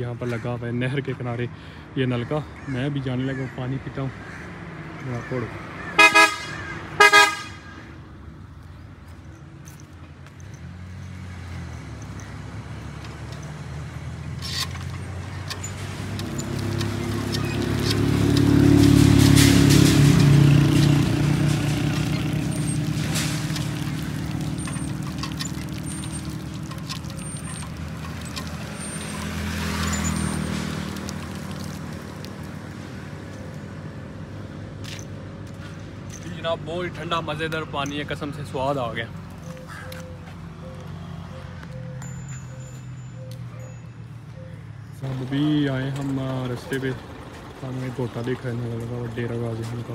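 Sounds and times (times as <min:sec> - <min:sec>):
horn toots: 0:05.9 - 0:07.9
vehicle engine passing: 0:10.5 - 0:42.1, 0:42.8 - 0:49.9.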